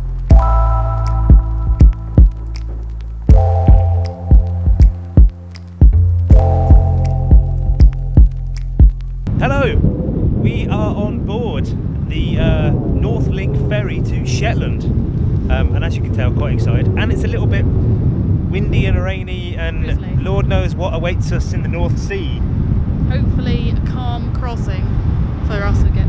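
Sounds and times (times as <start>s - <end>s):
background music with steady beat: 0.0s - 9.3s
wind buffeting microphone: 7.9s - 26.0s
people talking: 9.4s - 9.8s, 10.4s - 14.9s, 15.5s - 17.6s, 18.5s - 22.4s, 23.1s - 24.9s, 25.5s - 26.0s.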